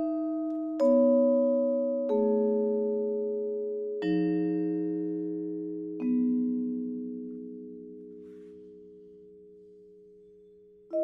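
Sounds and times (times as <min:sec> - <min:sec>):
vibraphone chord ringing: 0:00.0 - 0:11.0
vibraphone notes struck with mallet: 0:00.0 - 0:11.0.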